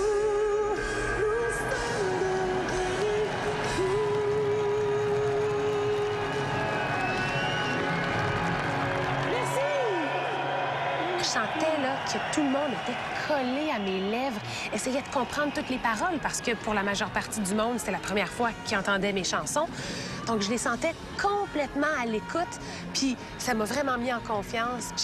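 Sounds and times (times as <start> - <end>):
woman singing long notes: 0.0 - 6.6.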